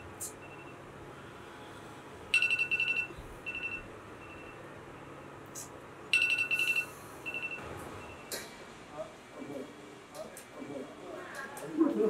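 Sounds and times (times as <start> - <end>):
electronic alarm beeping: 0.2 - 0.8, 2.3 - 5.3, 6.1 - 8.3.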